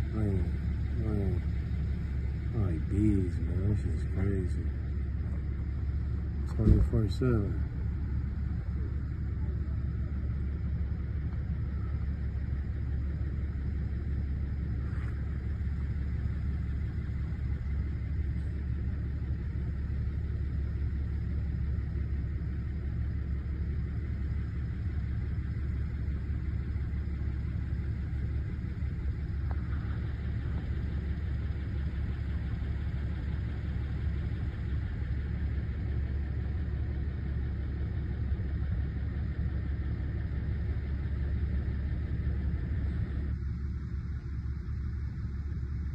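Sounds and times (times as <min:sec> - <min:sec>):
low rumble: 0:00.0 - 0:45.9.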